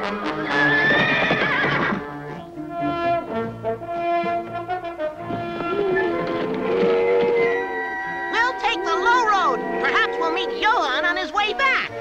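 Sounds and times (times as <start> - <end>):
cartoon horse whinnying: 0.0 - 2.2
orchestral music with brass: 0.0 - 12.0.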